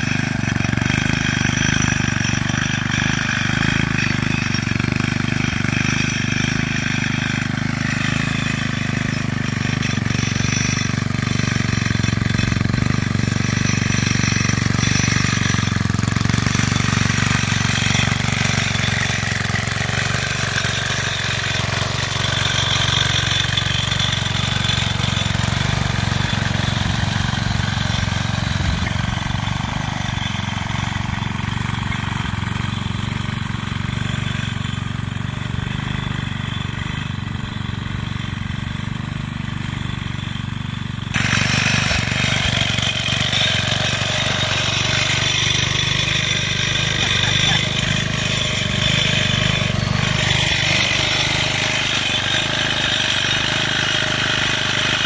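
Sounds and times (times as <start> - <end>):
small tractor engine running: 0.0 - 55.0.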